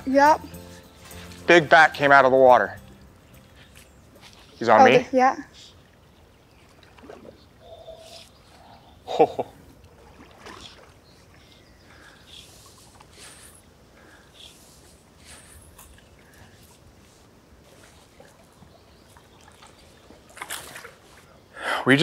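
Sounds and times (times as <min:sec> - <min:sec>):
water lapping around boat: 0:01.0 - 0:21.5.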